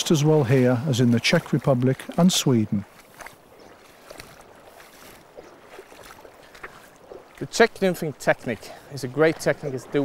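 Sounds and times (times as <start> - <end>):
shallow river rushing: 0.0 - 10.0
splashes of wading steps: 0.0 - 10.0.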